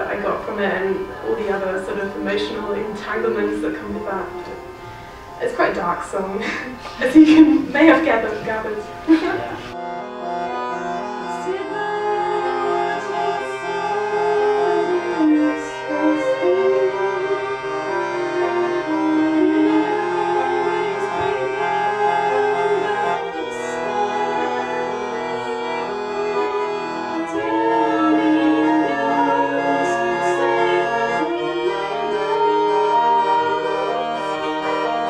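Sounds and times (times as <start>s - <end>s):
bowed violin: 0.0s - 35.0s
piano accordion chords: 0.0s - 35.0s.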